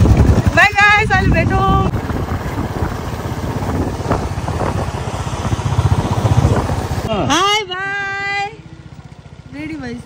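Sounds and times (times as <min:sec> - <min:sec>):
scooter engine: 0:00.0 - 0:10.0.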